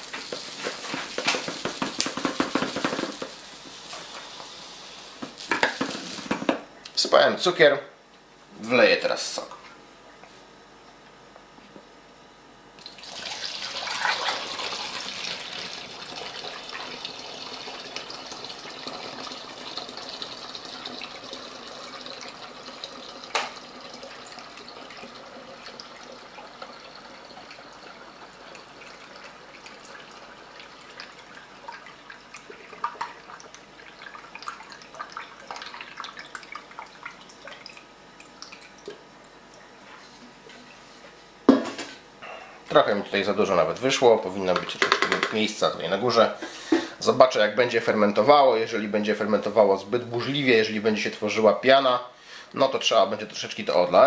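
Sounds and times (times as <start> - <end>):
juice pouring into plastic bottle: 12.8 - 39.0
liquid dribbling and dripping: 15.8 - 39.9.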